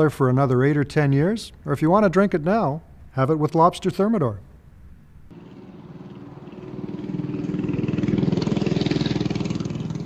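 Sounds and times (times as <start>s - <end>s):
motorcycle engine passing by: 5.3s - 10.0s.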